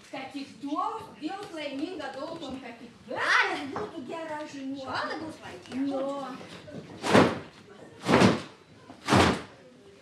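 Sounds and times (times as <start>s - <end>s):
cloth being shaken and flapped: 6.6s - 9.5s.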